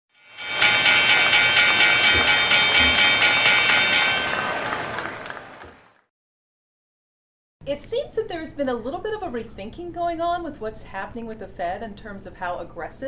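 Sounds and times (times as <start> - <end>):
pulsing synthesized chord: 0.2 - 4.2.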